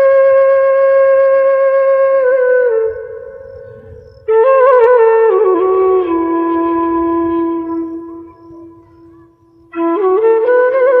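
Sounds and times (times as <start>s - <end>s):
flute holding long note: 0.0s - 11.0s.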